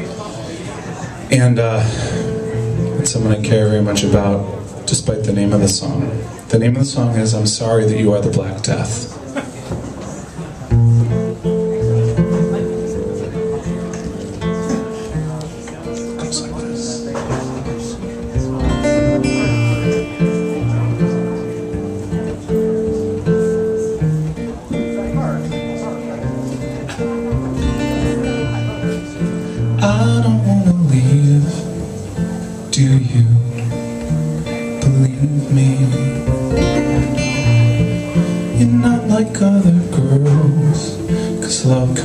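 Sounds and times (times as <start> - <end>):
acoustic guitar playing: 0.0 - 42.0.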